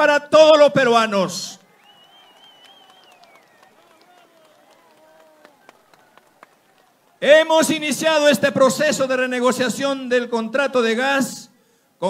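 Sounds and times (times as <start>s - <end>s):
crowd clapping: 1.6s - 7.5s
sharp single claps: 2.2s - 6.8s.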